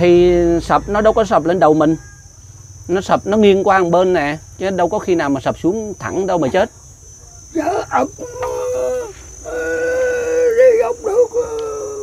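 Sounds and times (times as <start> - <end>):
old man's voice holding long tones: 0.0 - 2.1, 2.9 - 6.8, 7.4 - 12.0.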